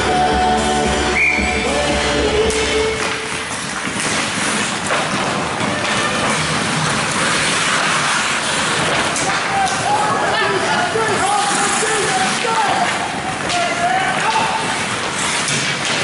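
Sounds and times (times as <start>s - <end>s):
arena music over loudspeakers: 0.0s - 3.5s
hockey sticks clacking: 2.4s - 16.0s
skates on ice: 2.4s - 16.0s.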